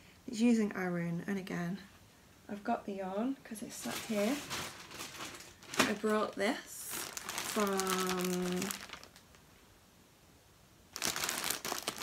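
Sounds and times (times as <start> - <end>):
plastic bag crinkling: 3.7 - 9.4, 10.9 - 12.0.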